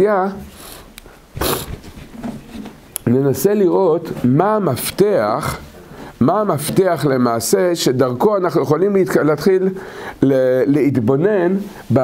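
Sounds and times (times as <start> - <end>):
man speaking: 0.0 - 0.5, 3.0 - 12.0
short breathy hiss: 0.5 - 1.8.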